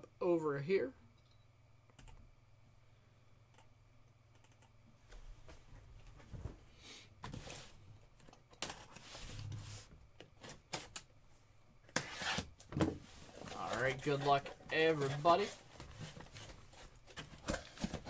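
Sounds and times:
cardboard rubbing and scraping: 12.0 - 12.5, 13.1 - 17.0.

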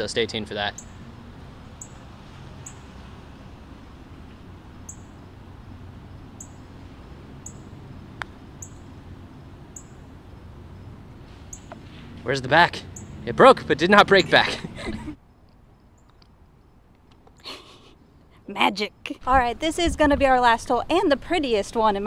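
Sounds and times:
outdoor background noise: 0.0 - 22.0
bird chirping: 0.6 - 3.0, 4.7 - 5.3, 6.4 - 6.7, 7.4 - 7.8, 8.6 - 8.9, 9.7 - 10.1, 11.5 - 11.8, 12.9 - 13.3, 15.3 - 16.8.

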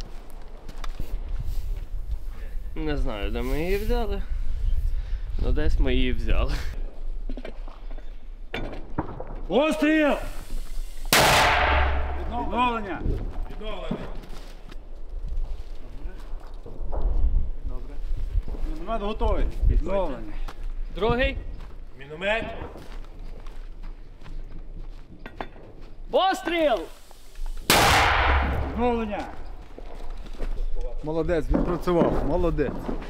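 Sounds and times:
mortar firing blast: 11.1 - 13.2, 27.7 - 29.4.

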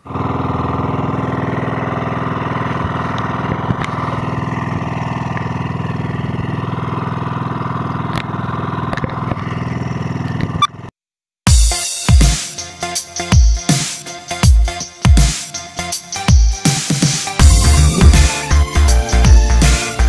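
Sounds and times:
boat engine running: 0.0 - 10.9, 17.4 - 20.0.

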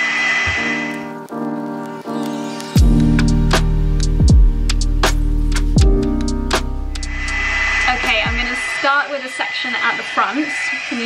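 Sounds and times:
background music: 0.0 - 8.8
woman speaking: 7.8 - 11.0.

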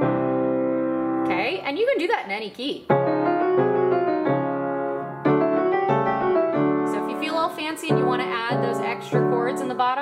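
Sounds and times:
upright piano playing: 0.0 - 2.0, 2.8 - 10.0.

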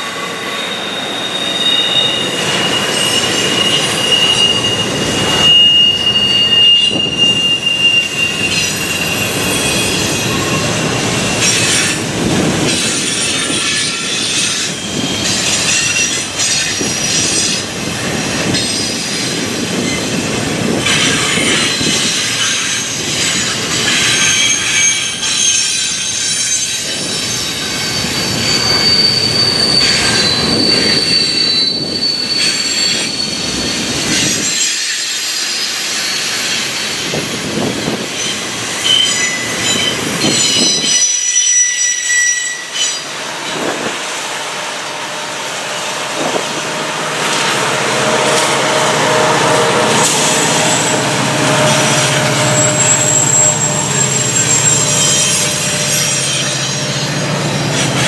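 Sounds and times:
high-pitched wheel squeals: 0.0 - 58.0
train wheels rumbling on rails: 0.0 - 58.0.

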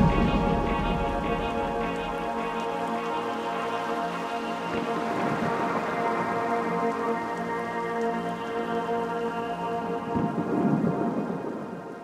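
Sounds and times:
held music chord: 0.0 - 7.4
low grainy noise swell: 0.0 - 12.0.

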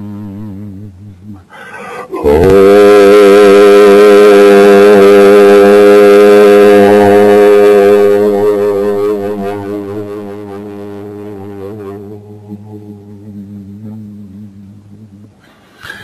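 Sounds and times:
man chanting a long note: 0.0 - 1.5, 2.1 - 15.4.

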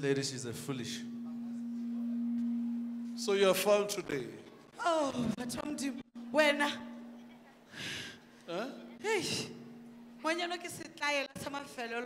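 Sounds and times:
steady low pure tone: 0.6 - 10.8.

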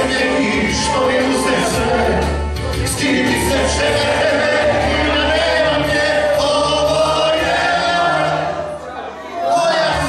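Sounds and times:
music with steady low bass: 0.0 - 8.2
group of voices singing: 0.0 - 10.0.

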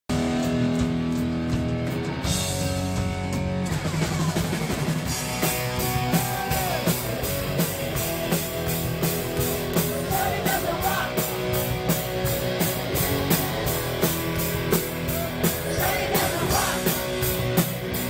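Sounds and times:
drums playing steady beat: 0.1 - 18.0
electric guitar chords: 0.1 - 18.0
live rock band: 0.1 - 18.0.

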